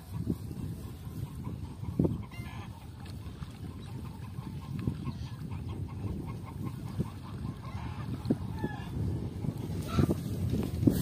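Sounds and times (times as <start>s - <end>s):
chickens clucking: 0.0s - 10.7s.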